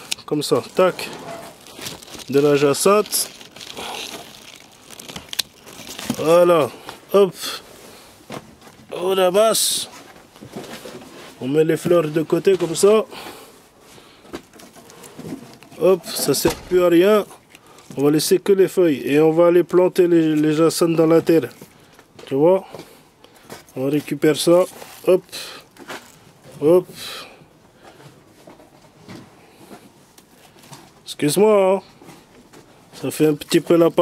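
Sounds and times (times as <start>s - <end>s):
plant stems and leaves rustling: 0.0s - 27.0s, 27.8s - 34.0s
faint outdoor background: 0.0s - 34.0s.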